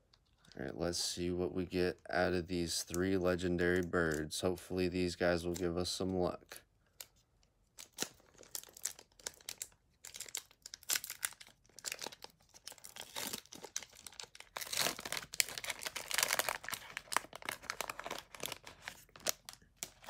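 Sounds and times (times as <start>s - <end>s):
foil wrapper tearing and crinkling: 7.8s - 20.0s.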